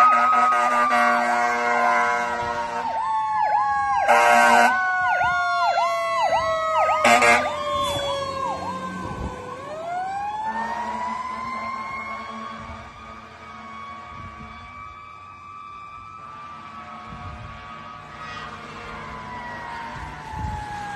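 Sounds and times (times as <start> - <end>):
fire truck siren: 0.0 - 20.9.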